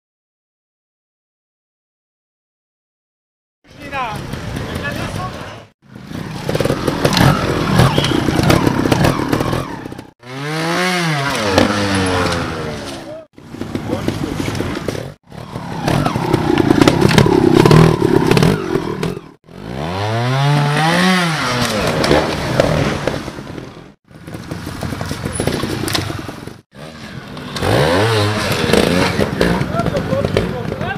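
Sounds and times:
motorcycle engine revving: 3.7s - 30.9s
motorcycle clatter on rocks: 11.4s - 15.2s, 21.6s - 26.6s, 27.3s - 30.9s.

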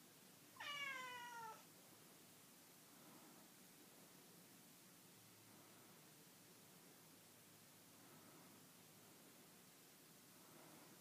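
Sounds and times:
cat meowing: 0.6s - 1.6s.

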